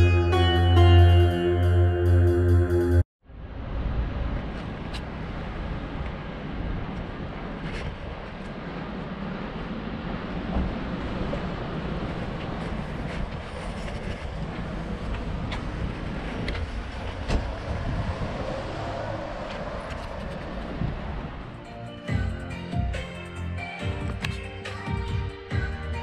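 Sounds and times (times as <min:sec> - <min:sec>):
passing traffic rumble: 0:00.0 - 0:22.7.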